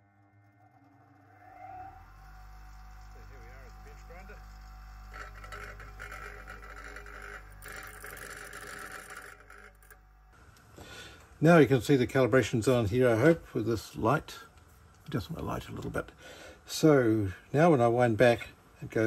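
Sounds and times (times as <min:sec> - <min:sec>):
bench grinder motor humming: 0:01.1 - 0:10.3
steel grinding against wheel: 0:04.1 - 0:10.0.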